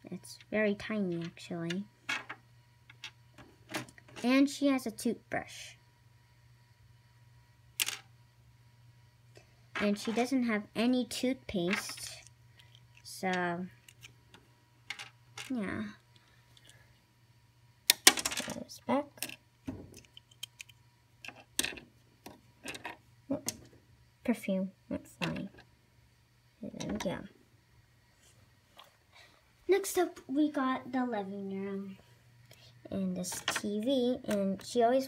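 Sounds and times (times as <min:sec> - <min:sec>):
low steady hum: 0:00.0 - 0:35.0
plastic toys clicking and tapping: 0:17.9 - 0:18.6, 0:19.2 - 0:21.8, 0:22.6 - 0:23.6.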